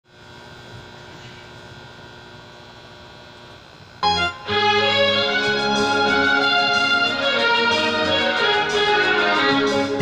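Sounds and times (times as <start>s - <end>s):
steady electrical hum: 0.0s - 10.0s.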